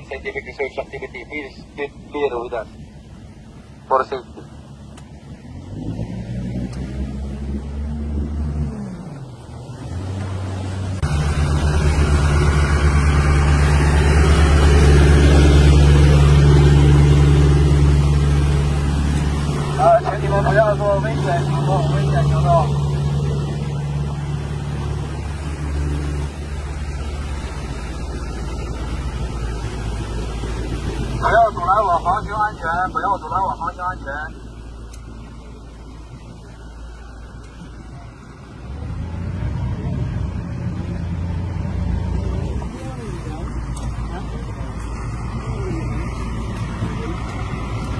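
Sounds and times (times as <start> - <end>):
boat engines running at speed: 0.0 - 47.9
wind: 0.0 - 47.9.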